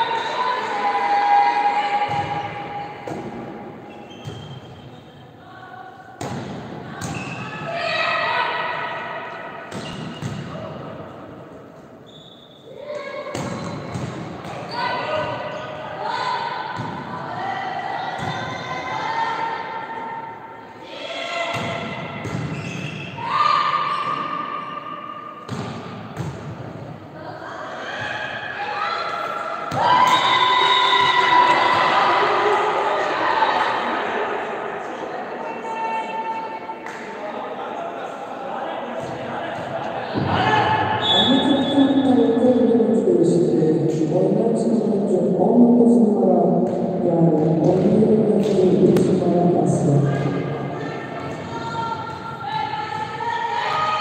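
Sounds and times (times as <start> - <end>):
girls shouting and calling: 7.5 - 9.5, 50.0 - 54.0.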